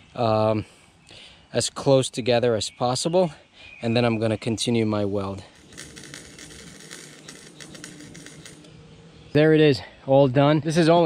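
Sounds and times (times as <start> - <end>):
welder arc crackling: 5.2 - 8.7.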